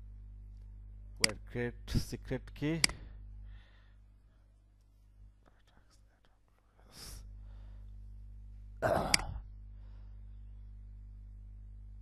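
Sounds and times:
steady low hum: 0:00.0 - 0:12.0
soft clicks: 0:02.8 - 0:03.0.

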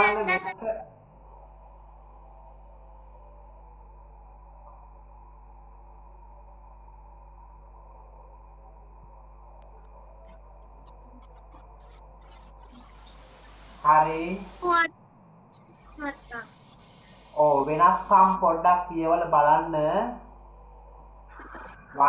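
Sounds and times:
person speaking: 0:00.0 - 0:00.7, 0:13.8 - 0:14.9, 0:16.0 - 0:16.5, 0:17.2 - 0:20.1
low electrical hum: 0:00.0 - 0:22.0
hiss: 0:12.6 - 0:14.8, 0:15.7 - 0:18.5.

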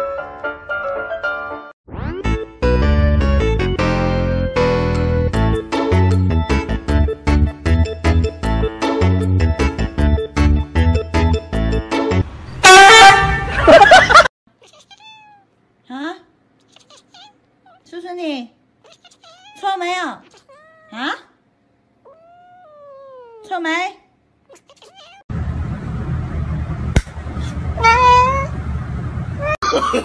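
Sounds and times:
kitten meowing: 0:14.6 - 0:15.5, 0:16.7 - 0:17.8, 0:18.9 - 0:19.6, 0:20.2 - 0:21.0, 0:22.0 - 0:23.5, 0:24.5 - 0:25.2, 0:27.8 - 0:28.5.

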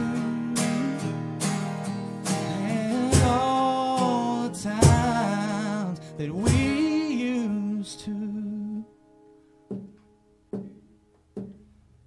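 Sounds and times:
acoustic guitar strummed chords: 0:00.0 - 0:11.8.

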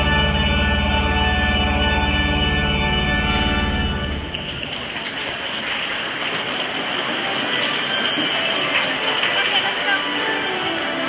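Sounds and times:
church organ chord: 0:00.0 - 0:04.5.

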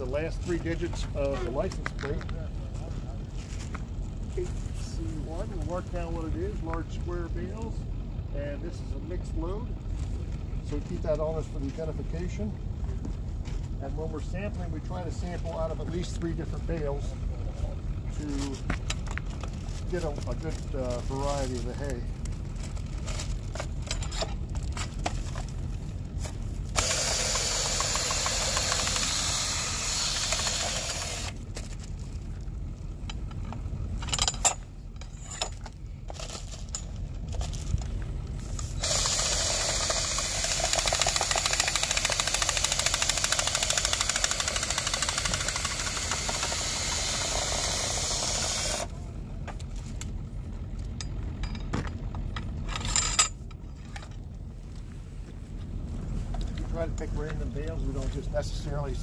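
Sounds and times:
steady low rumble: 0:00.0 - 0:59.0
cordless drill spinning: 0:26.7 - 0:31.4, 0:38.6 - 0:48.9.

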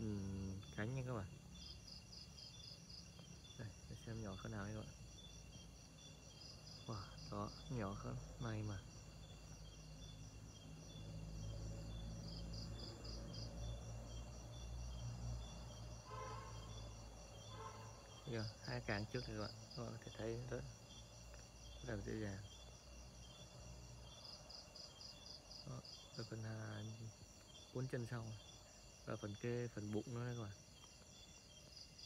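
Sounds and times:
crickets trilling: 0:00.0 - 0:32.0
night insects chirping: 0:00.0 - 0:32.0.

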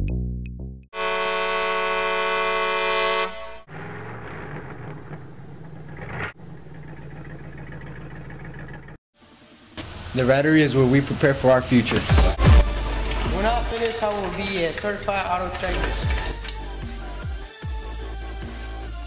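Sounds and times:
loud horn-like blast: 0:00.9 - 0:03.7.

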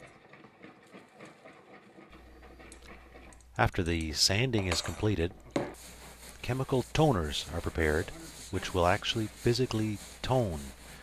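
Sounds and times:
stirring in plastic bucket: 0:00.0 - 0:11.0.

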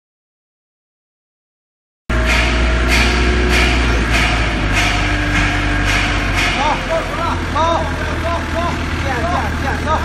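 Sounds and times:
sharp repeating clatter: 0:02.1 - 0:07.8
heavy engine humming: 0:02.1 - 0:10.0.

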